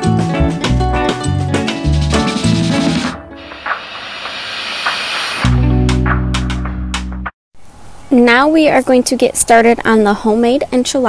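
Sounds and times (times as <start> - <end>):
pressure cooker steam hiss: 3.4 - 5.6.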